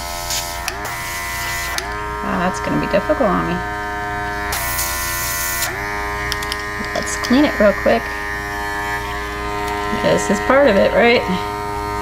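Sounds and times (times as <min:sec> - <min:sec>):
compressor humming: 0:00.0 - 0:12.0.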